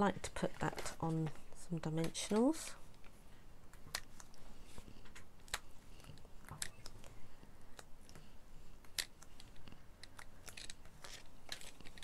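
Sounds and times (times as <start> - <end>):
craft pick clicks and scratches: 7.7 - 12.0.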